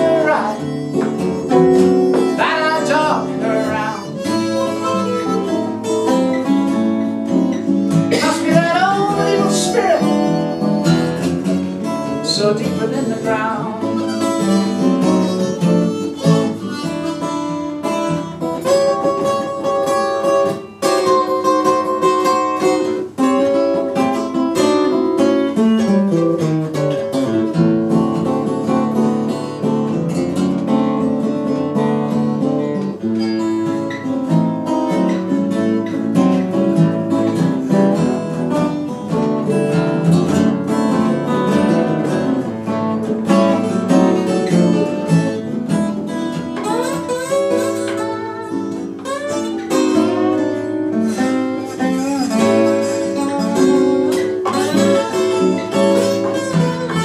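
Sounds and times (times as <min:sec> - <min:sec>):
harmonica playing: 0:00.0 - 0:23.0, 0:37.1 - 0:57.0
acoustic guitars strumming: 0:00.0 - 0:57.0.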